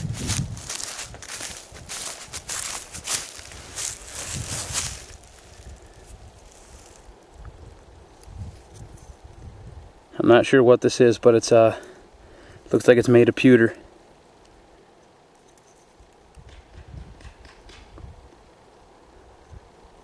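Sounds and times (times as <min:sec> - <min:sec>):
hand rubbing loose soil: 0:00.0 - 0:07.1
dry grass and leaves rustling: 0:00.0 - 0:20.0.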